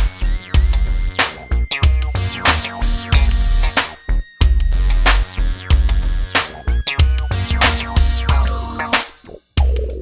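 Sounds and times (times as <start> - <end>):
hip-hop beat: 0.0 - 10.0.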